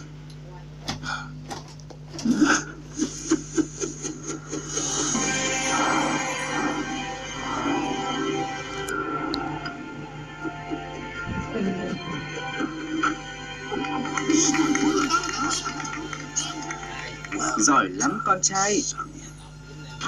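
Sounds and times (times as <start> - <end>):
steady low hum: 0.0 - 20.0
cartoon music from television speaker: 4.6 - 18.4.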